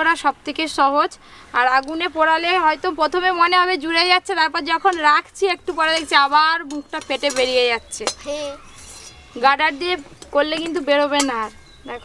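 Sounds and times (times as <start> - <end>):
woman speaking: 0.0 - 8.1, 9.4 - 12.0
metal kitchen utensils clinking: 4.7 - 11.8.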